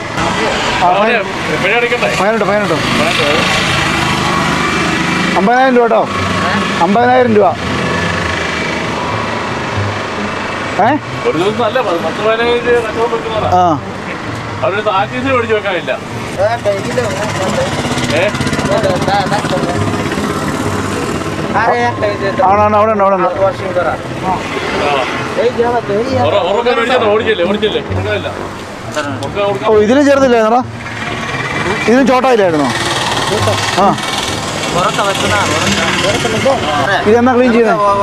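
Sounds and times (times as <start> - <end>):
street traffic noise: 0.0 - 38.0.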